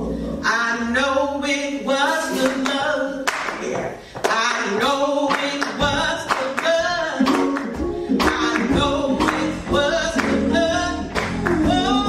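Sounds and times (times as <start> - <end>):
voices singing church song: 4.3 - 12.0
instrumental backing: 5.8 - 12.0.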